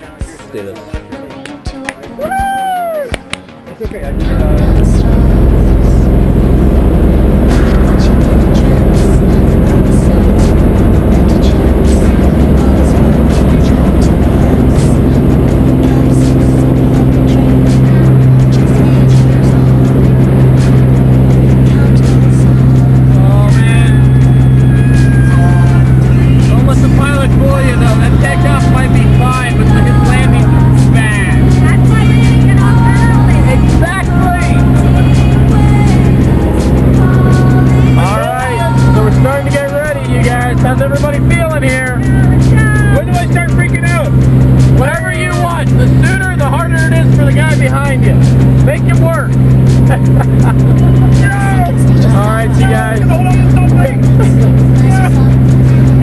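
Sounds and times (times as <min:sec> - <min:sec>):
propeller plane engine drone: 0:04.0 - 0:56.0.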